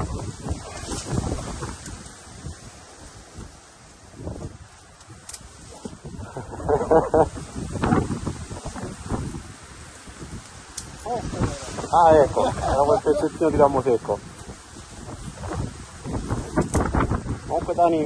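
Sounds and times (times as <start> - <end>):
vegetation rustling: 0.0 - 18.0
wind buffeting microphone: 0.0 - 18.0.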